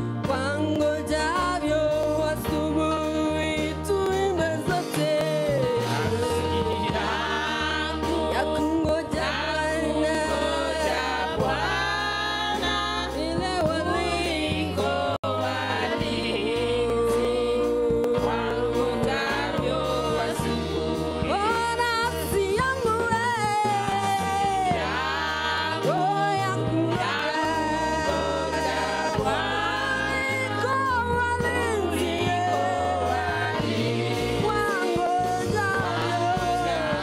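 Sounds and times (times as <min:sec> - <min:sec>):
choir singing gospel song: 0:00.0 - 0:37.0
low instrumental backing: 0:00.0 - 0:37.0.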